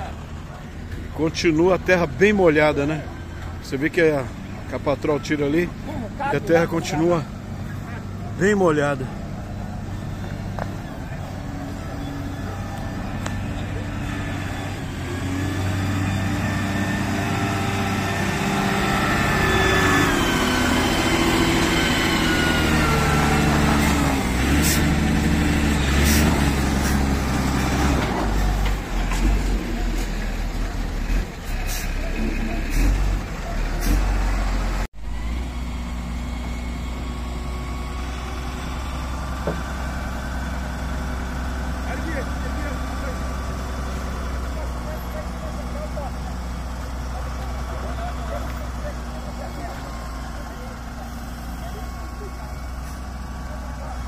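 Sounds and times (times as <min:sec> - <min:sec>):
heavy truck engine: 0:00.0 - 0:54.0
wheel loader diesel engine revving: 0:00.0 - 0:54.0.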